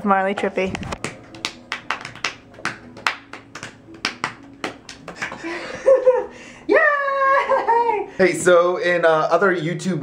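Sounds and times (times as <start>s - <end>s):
hands slapping dog's belly: 0.4s - 5.6s.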